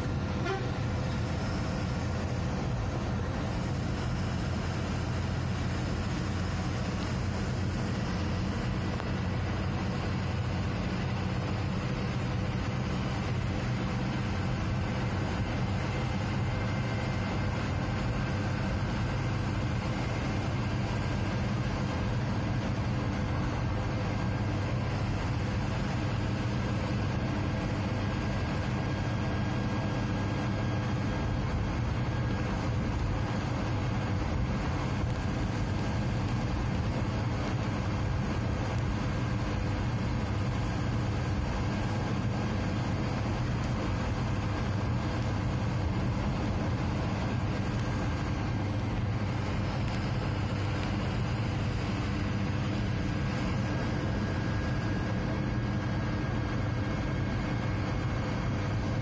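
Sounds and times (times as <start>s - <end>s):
road noise: 0.0s - 59.0s
truck diesel engine droning: 0.0s - 59.0s.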